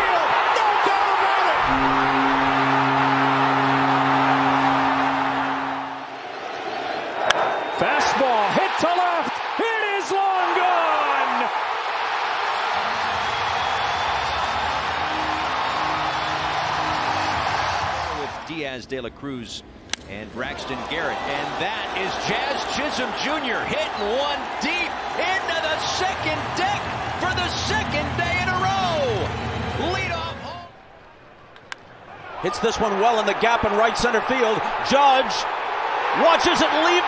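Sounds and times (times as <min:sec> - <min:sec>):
crowd roaring: 0:00.0 - 0:18.5, 0:20.4 - 0:31.2, 0:32.0 - 0:37.0
broadcaster calling excitedly: 0:07.8 - 0:11.5, 0:20.4 - 0:29.2
steady sustained tones: 0:14.4 - 0:17.9.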